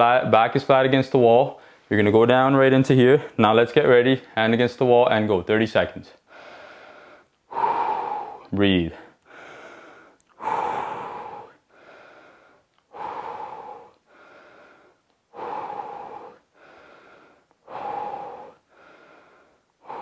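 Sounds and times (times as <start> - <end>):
man breathing deeply: 6.2 - 20.0.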